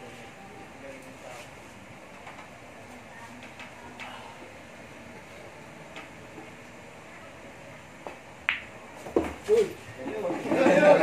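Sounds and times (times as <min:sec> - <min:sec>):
ball dropping into pocket: 0:08.4 - 0:09.3
cue tip tapping cue ball: 0:08.4 - 0:09.3
pool balls clicking together: 0:08.5 - 0:08.7.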